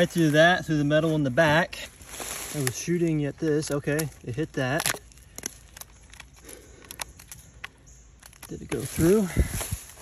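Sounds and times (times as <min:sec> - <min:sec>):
rustle of leaf litter: 0:00.0 - 0:03.2, 0:08.5 - 0:10.0.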